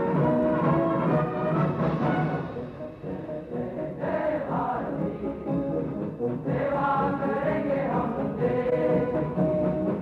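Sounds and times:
musical accompaniment: 0.0 - 10.0
choir singing held notes: 1.4 - 10.0.

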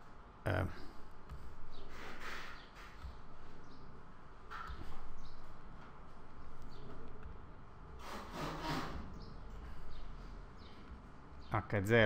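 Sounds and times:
stylus rubbing on screen: 0.9 - 11.0.

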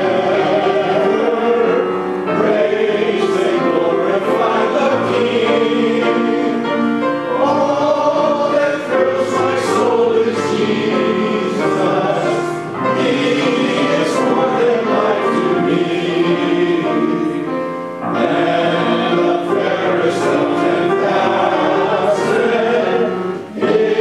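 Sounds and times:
congregation singing a hymn: 0.0 - 24.0
piano: 0.0 - 24.0.

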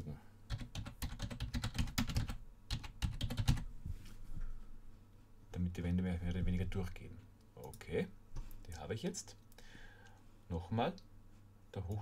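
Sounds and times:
typing on computer keyboard: 0.5 - 3.6.

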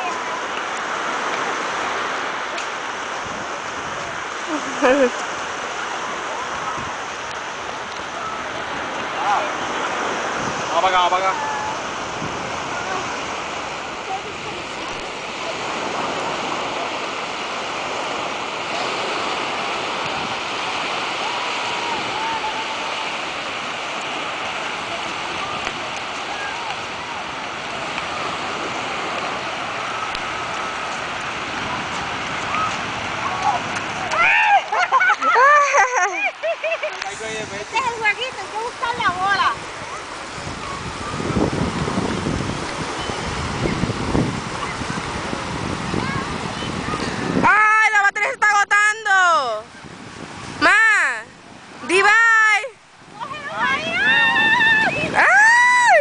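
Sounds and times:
small waves washing onto beach: 0.0 - 56.0
wind buffeting microphone: 0.0 - 56.0.

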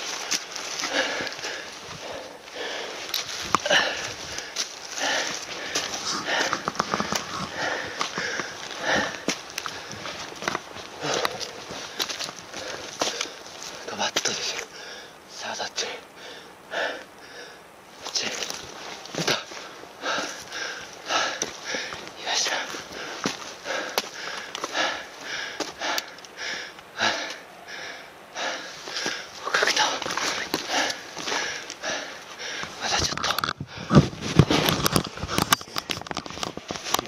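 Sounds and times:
footsteps on dry leaves and stones: 0.0 - 14.7, 18.0 - 26.2, 28.7 - 37.0
person breathing hard: 0.0 - 36.1
twigs snapping: 3.0 - 14.7.

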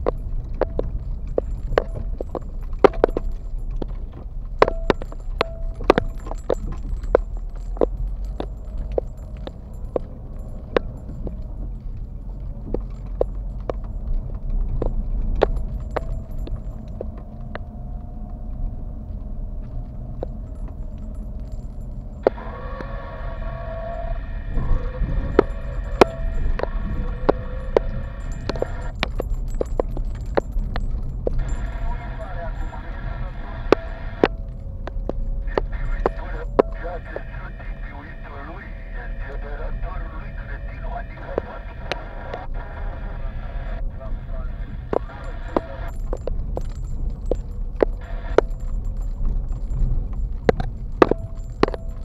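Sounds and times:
car knocks and rattles: 0.0 - 22.4, 25.2 - 31.8
sustained whining tone: 0.0 - 52.0
tyre and engine rumble: 0.0 - 52.0.

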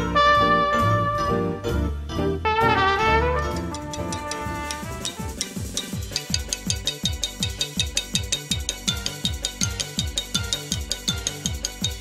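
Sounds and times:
trumpet holding a note: 0.0 - 1.4, 2.4 - 5.4
keyboard chords: 0.0 - 6.8
electronic drum beat: 3.6 - 12.0.

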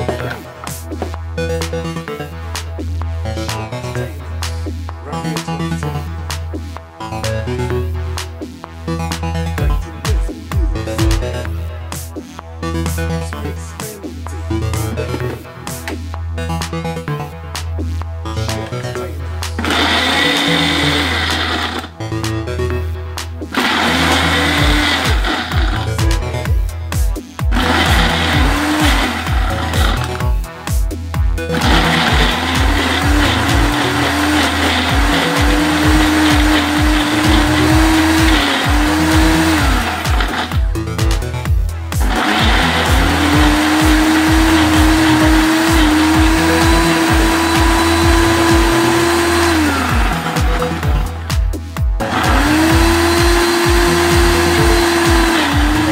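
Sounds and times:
background music with kick drums: 0.0 - 55.9
blender motor running: 19.6 - 22.0, 23.5 - 26.7, 27.4 - 30.5, 31.4 - 55.9.

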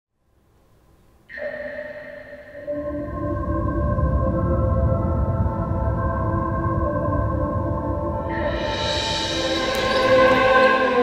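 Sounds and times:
held chord of steady tones: 1.3 - 11.0.

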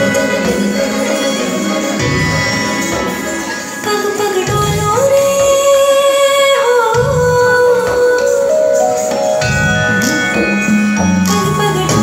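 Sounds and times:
musical backing: 0.0 - 12.0.

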